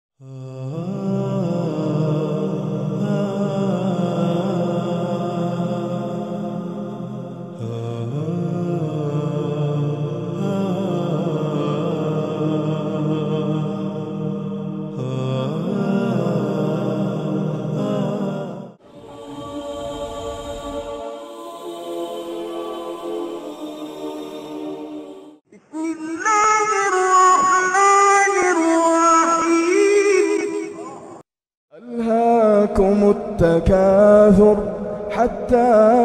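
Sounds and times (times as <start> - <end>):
wordless chant-like singing: 0.2 - 36.0
sustained low drone: 18.9 - 23.0.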